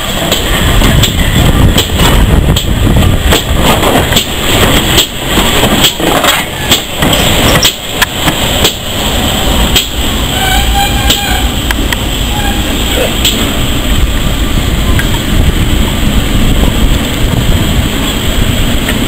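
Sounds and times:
locomotive low rumble: 0.0s - 19.0s
train knocks and clanks: 0.0s - 19.0s.

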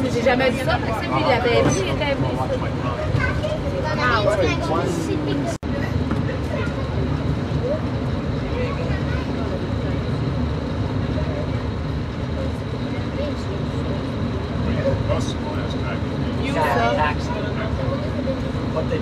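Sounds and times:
faint passenger voices: 0.0s - 19.0s.

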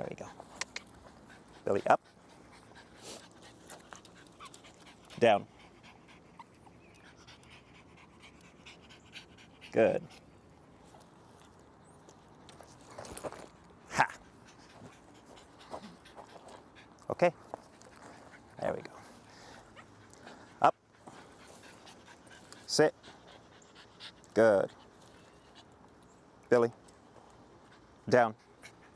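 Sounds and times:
small dog panting: 0.2s - 11.5s, 12.2s - 25.9s, 27.1s - 28.9s.

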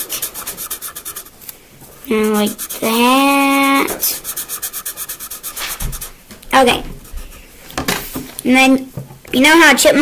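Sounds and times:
felt-tip marker rubbing on paper: 0.0s - 1.4s, 2.0s - 7.5s.

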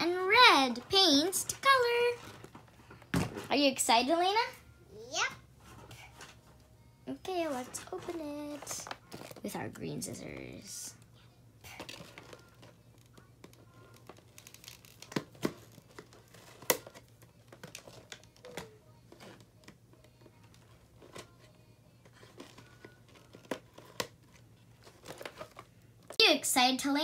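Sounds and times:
faint low hum: 0.0s - 26.1s
packaging crinkling: 13.9s - 19.4s, 22.1s - 25.8s.

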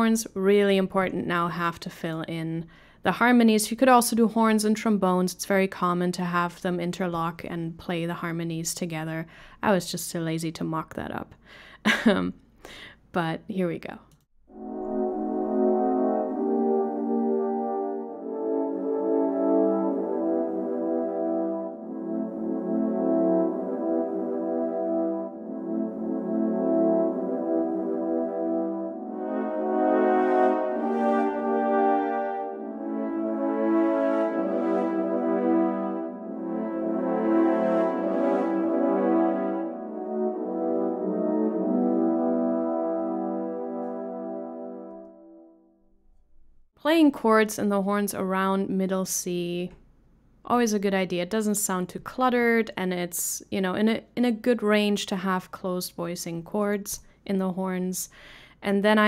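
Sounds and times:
french horn section chords: 14.5s - 45.7s.

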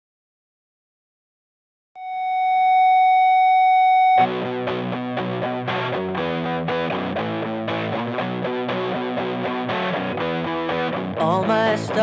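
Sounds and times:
steady electronic tone: 2.0s - 5.1s.

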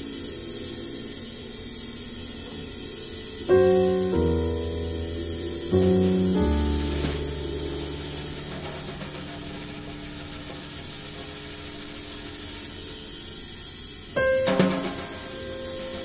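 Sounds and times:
acoustic piano chords: 0.0s - 13.0s, 14.1s - 16.0s
cymbal wash: 0.0s - 16.0s.

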